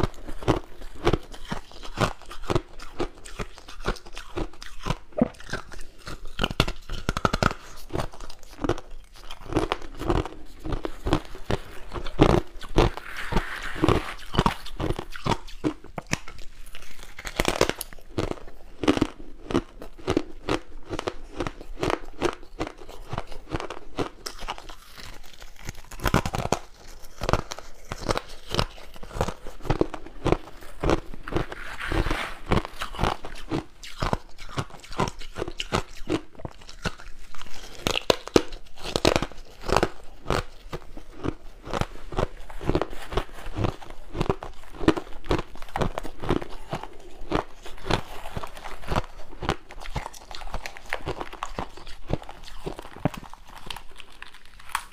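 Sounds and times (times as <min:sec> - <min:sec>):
ice crunching while chewed: 0:00.0 - 0:54.9.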